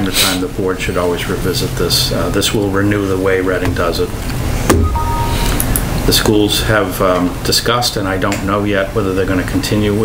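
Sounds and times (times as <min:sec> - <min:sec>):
room background hum: 0:00.0 - 0:10.0.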